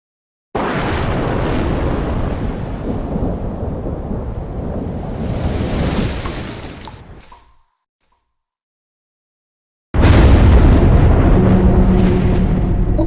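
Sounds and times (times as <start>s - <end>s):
deep rumble of thunder: 0.6s - 6.2s, 10.0s - 13.0s.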